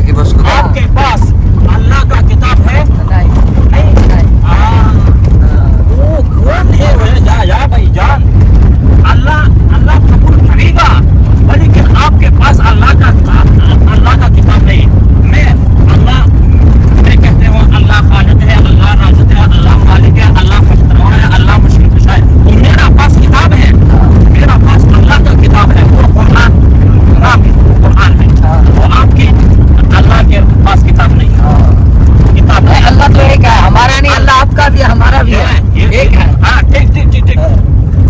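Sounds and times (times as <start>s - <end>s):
man talking: 0.0s - 8.3s, 8.9s - 16.4s, 17.0s - 37.6s
car interior rumble: 0.0s - 38.0s
road noise: 0.0s - 38.0s.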